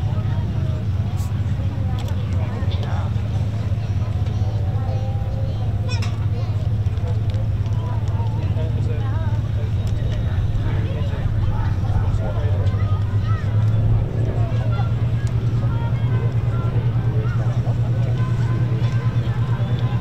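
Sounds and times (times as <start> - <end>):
aircraft engines droning: 0.0 - 20.0.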